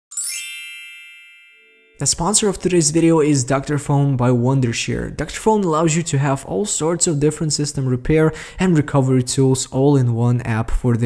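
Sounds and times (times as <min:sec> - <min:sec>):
bright bell-like chime: 0:00.1 - 0:02.3.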